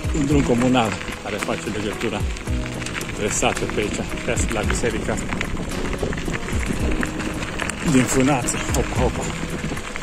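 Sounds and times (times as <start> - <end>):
man's voice: 0.0 - 2.4, 3.1 - 5.4, 7.8 - 9.5
footsteps crunching on gravel: 0.0 - 10.0.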